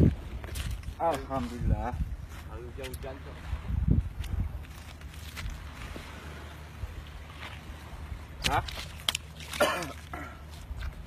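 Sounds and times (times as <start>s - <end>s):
low background rumble: 0.0s - 11.0s.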